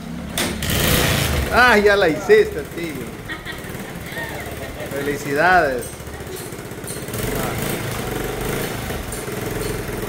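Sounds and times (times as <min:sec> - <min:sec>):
motorcycle engine chugging: 0:00.0 - 0:10.0.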